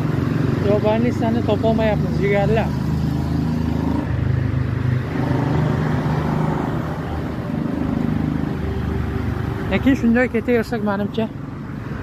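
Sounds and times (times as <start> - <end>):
street noise: 0.0 - 12.0
vehicle engine running: 0.0 - 12.0.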